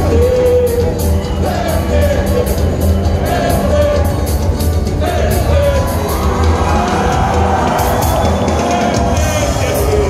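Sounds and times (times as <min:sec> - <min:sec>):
crowd cheering: 0:00.0 - 0:10.0
live band playing: 0:00.0 - 0:10.0.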